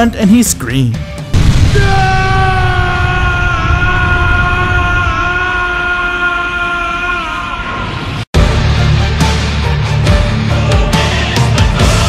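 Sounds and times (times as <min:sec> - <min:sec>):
man screaming: 0:01.6 - 0:08.0.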